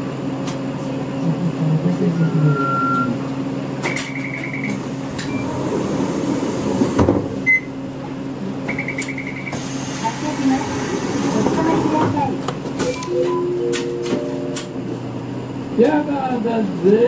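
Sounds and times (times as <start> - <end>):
bus diesel engine hum: 0.0 - 17.0.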